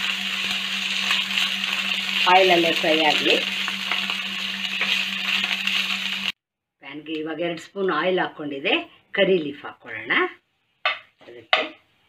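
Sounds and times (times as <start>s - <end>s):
food sizzling in hot oil: 0.0s - 6.4s.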